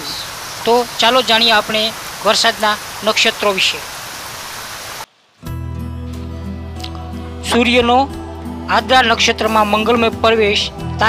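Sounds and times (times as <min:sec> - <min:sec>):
rain hiss: 0:00.0 - 0:05.3
background music over low drone: 0:05.5 - 0:11.0.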